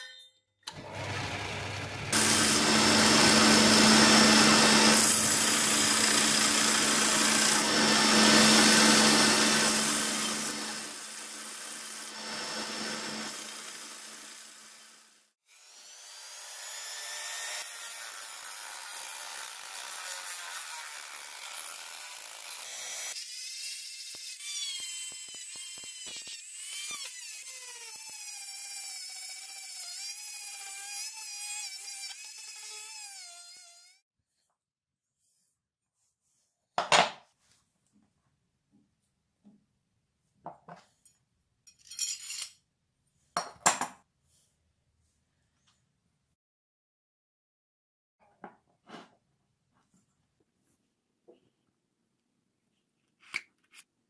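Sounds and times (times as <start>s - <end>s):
belt sander grinding steel: 0.7s - 15.1s
rotary tool grinding brass: 2.2s - 15.0s, 17.6s - 33.8s.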